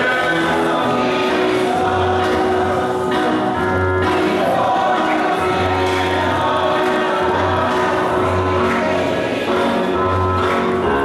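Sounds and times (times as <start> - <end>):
choir singing a hymn: 0.0 - 11.0
instrumental accompaniment: 0.0 - 11.0.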